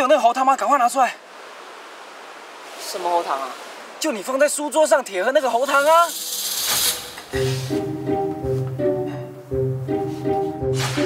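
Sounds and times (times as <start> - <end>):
background music with steady bass: 7.4 - 11.0.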